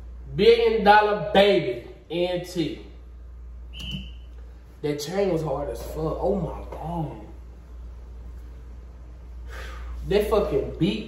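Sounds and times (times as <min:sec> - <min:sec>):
low steady hum: 0:00.0 - 0:11.0
short high-pitched beep: 0:03.7 - 0:04.3.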